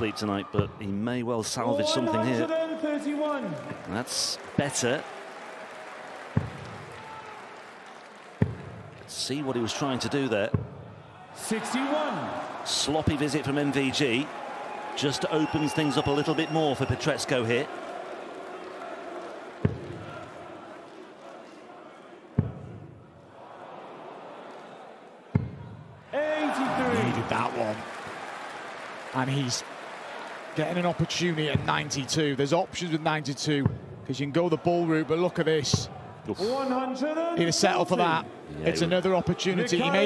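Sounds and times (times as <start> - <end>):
arena crowd noise: 0.0 - 40.0.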